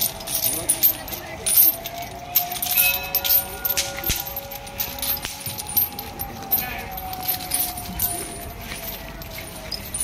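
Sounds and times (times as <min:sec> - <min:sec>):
heavy chains clinking and jangling: 0:00.0 - 0:10.0.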